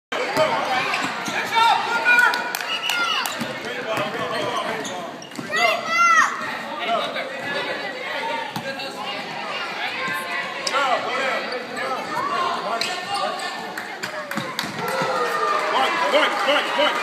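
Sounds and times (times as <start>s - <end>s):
shoe squeals: 0.6s - 1.6s, 2.9s - 6.0s.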